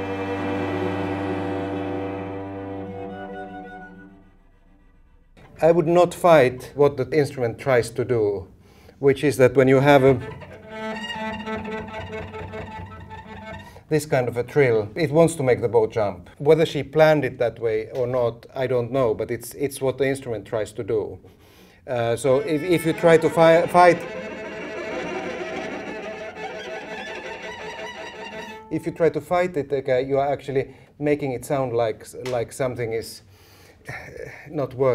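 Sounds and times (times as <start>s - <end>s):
bowed cello trill: 0.0s - 6.2s, 9.5s - 14.2s, 22.2s - 29.3s.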